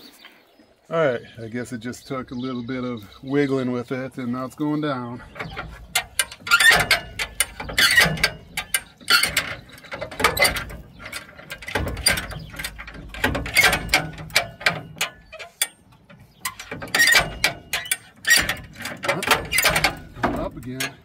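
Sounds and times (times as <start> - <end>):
jack ratchet clicking and clanking: 5.2 - 21.0.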